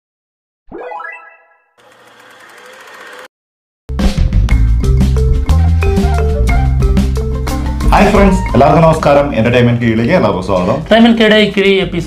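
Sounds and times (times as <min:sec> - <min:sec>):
fast whirring rattle: 0:01.8 - 0:03.3
marimba music: 0:04.0 - 0:09.0.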